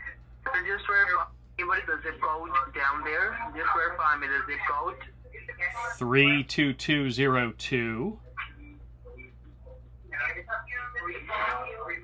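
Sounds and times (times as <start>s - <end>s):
speech over telephone line: 0.0s - 12.0s
steady low hum: 0.0s - 12.0s.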